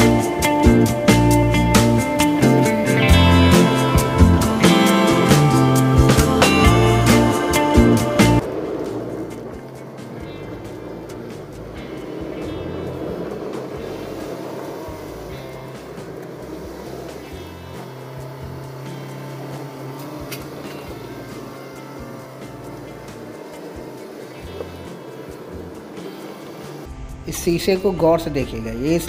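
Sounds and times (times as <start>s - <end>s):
background music: 0.0s - 29.0s
car running noise: 0.0s - 29.0s.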